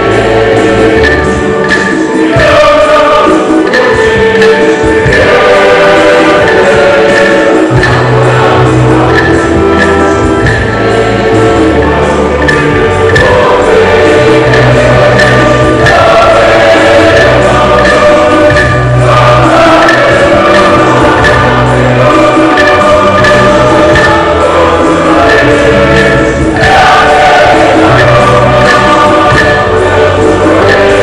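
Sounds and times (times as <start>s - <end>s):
choir singing a hymn: 0.0s - 31.0s
instrumental backing: 0.0s - 31.0s
low bass line: 4.0s - 31.0s.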